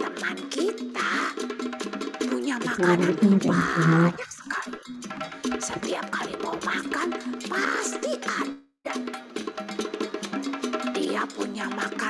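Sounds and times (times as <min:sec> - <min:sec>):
woman speaking in drawn-out syllables: 0:02.3 - 0:04.7.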